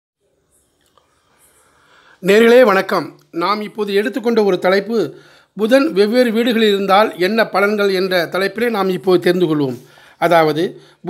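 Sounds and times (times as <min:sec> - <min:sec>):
faint recording hiss: 0:00.2 - 0:11.0.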